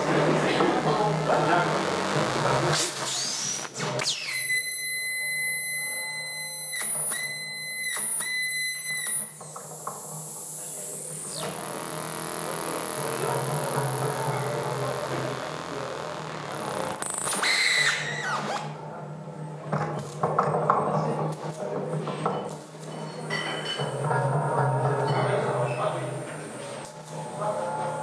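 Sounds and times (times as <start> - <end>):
low buzzing drone: 0.0 - 3.8, 8.6 - 19.6
high steady whistling tone: 3.0 - 9.4
low hum: 9.7 - 17.3.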